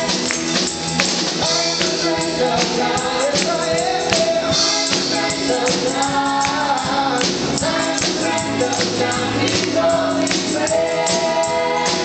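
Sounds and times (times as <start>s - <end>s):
congregation singing with band: 0.0s - 12.0s
hand shaker percussion: 0.0s - 12.0s.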